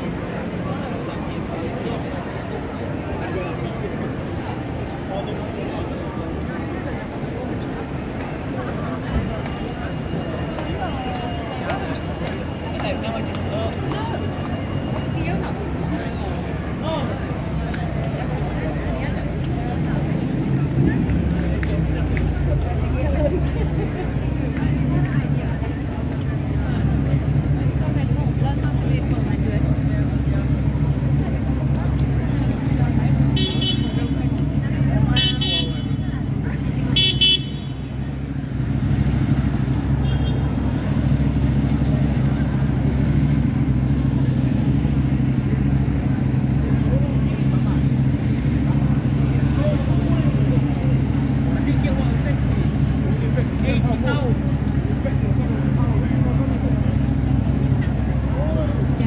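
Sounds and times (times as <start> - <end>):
people talking: 0.0 - 59.0
traffic rumble: 0.0 - 59.0
car horn toots: 37.0 - 37.8.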